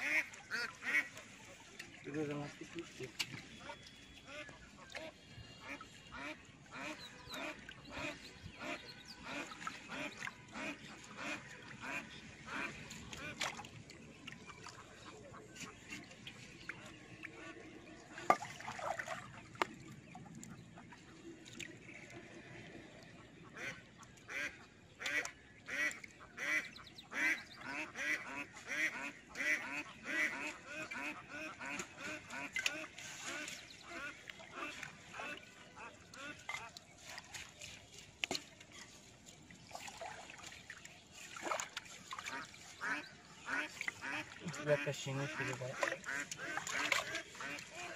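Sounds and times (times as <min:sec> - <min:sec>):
duck quacking: 0:00.0 - 0:01.2, 0:23.5 - 0:36.7, 0:42.3 - 0:47.9.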